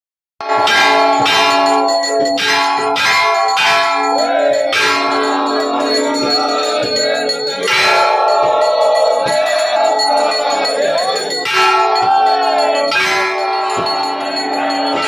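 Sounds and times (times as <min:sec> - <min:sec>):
metal temple bells ringing: 0:00.4 - 0:15.0.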